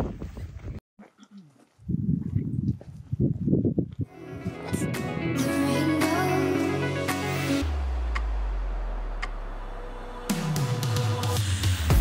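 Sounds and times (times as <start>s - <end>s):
wind buffeting microphone: 0.0s - 0.8s, 1.8s - 4.9s
background music with bass: 4.1s - 12.0s.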